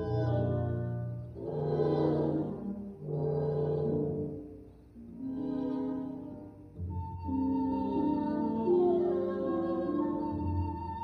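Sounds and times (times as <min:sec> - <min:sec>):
chamber orchestra sustained chords: 0:00.0 - 0:06.8.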